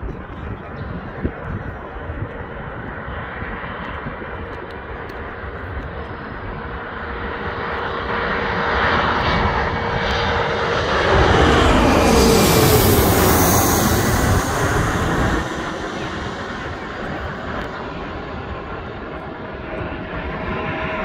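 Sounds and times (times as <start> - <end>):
jet engine whine: 0.0 - 21.0
jet engines on approach: 0.0 - 21.0.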